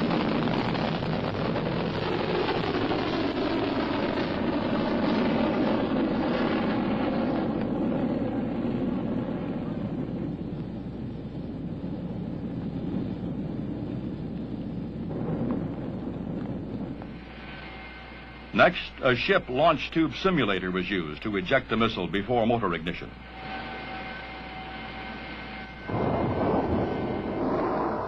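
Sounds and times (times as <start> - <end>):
rocket motor roaring: 23.0 - 28.0.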